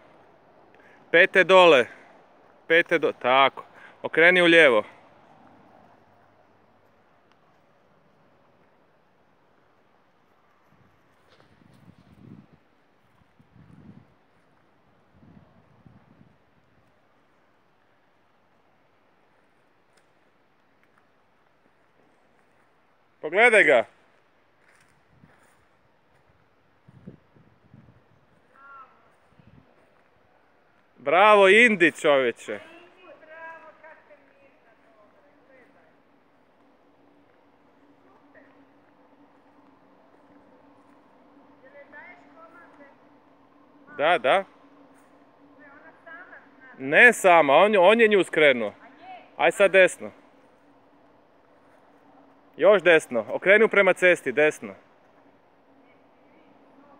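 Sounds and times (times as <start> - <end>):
distant voices: 0.0 - 13.4, 27.7 - 56.9
low steady hum: 0.0 - 56.9.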